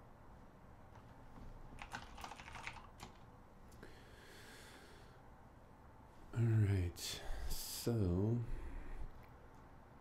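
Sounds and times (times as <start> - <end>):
typing on computer keyboard: 1.8 - 3.3.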